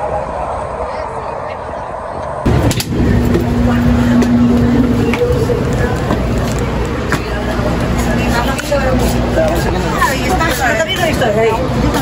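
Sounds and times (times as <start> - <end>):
city bus rumbling: 0.0 - 12.0
street traffic noise: 0.0 - 12.0.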